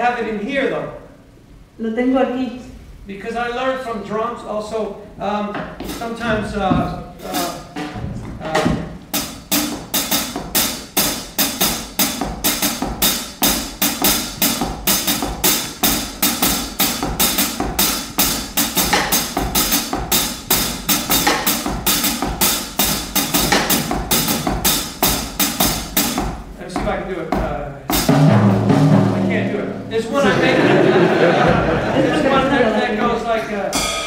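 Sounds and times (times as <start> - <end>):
drumsticks on ride cymbal: 33.7 - 34.0.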